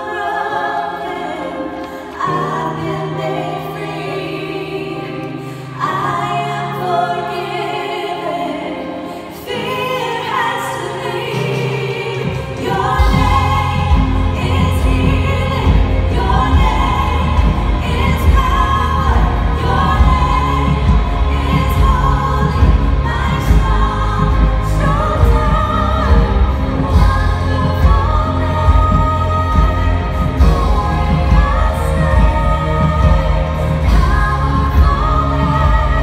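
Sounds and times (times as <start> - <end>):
women singing worship song: 0.0 - 36.0
band with pulsing bass beat: 13.0 - 36.0.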